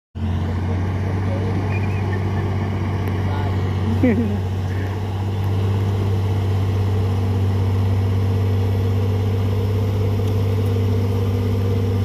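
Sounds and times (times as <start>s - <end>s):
dump truck diesel engine droning: 0.2s - 12.0s.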